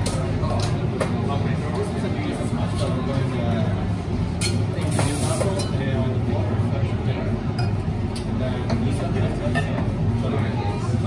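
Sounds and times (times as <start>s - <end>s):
customer chatter: 0.0s - 11.0s
low machine hum: 0.0s - 11.0s.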